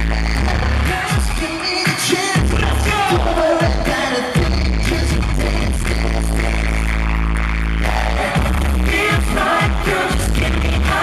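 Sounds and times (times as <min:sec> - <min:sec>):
live pop concert music: 0:00.0 - 0:11.0
drum beat: 0:00.4 - 0:06.0.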